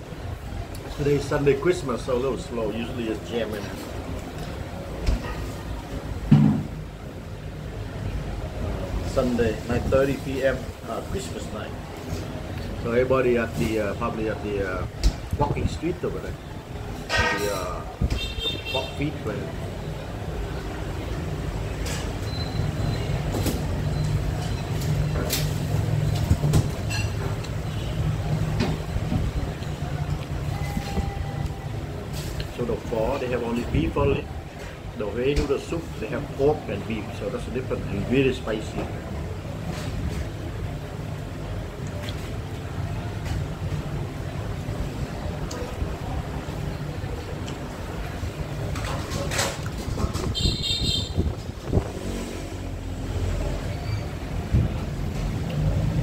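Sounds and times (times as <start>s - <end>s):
street traffic rumble: 0.0s - 56.0s.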